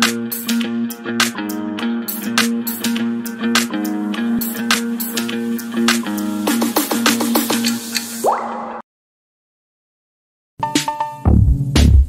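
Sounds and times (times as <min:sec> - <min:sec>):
water-drop-like blips: 0:08.2 - 0:08.8.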